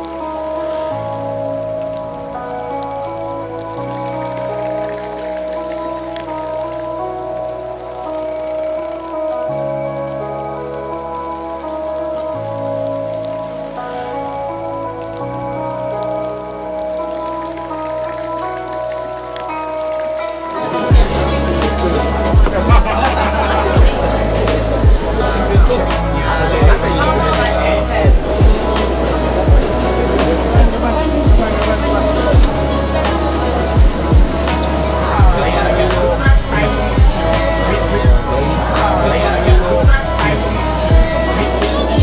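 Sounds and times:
slow sustained chords: 0:00.0 - 0:42.0.

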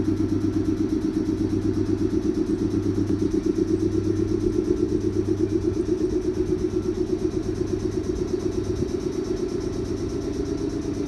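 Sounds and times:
electric train motor hum: 0:00.0 - 0:11.0.

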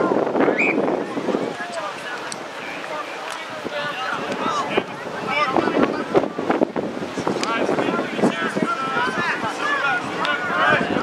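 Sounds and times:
wind buffeting microphone: 0:00.0 - 0:11.0
players and spectators shouting: 0:07.5 - 0:11.0.

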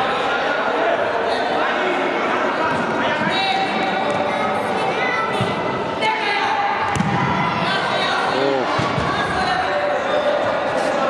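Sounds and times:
echoing voices and shouts: 0:00.0 - 0:11.0.

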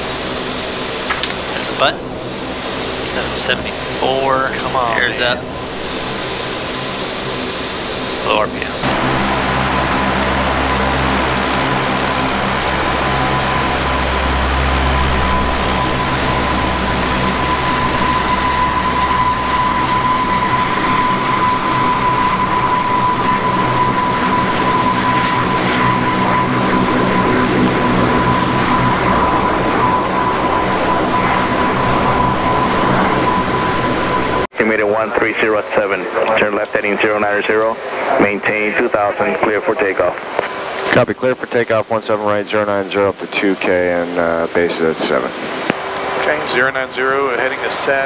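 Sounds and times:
turboprop engines running: 0:00.0 - 0:48.0
cockpit sound: 0:03.1 - 0:05.4.

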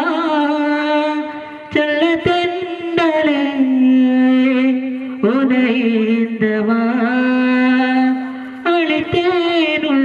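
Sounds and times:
man singing into microphone: 0:00.0 - 0:10.0
singer breath: 0:01.3 - 0:01.7.

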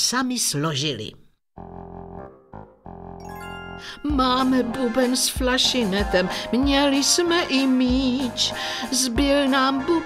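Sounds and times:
reedy organ-like chords: 0:01.6 - 0:03.9
woman narrating: 0:03.8 - 0:10.0.

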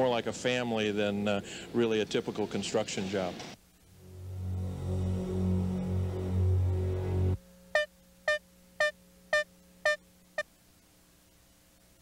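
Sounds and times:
faint steady hum: 0:00.0 - 0:12.0
short synthesizer notes: 0:03.8 - 0:07.9.

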